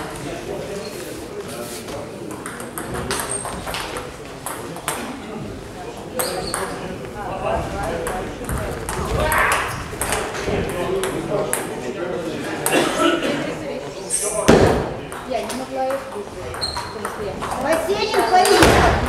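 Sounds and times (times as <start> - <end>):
people talking: 0.0 - 19.0.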